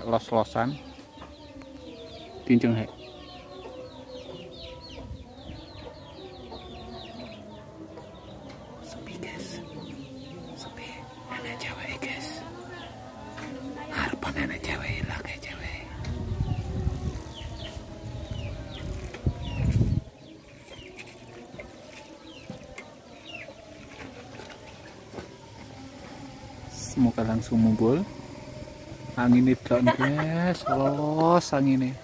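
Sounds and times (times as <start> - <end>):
faint voices: 0.0 - 32.0
small birds chirping: 0.0 - 32.0.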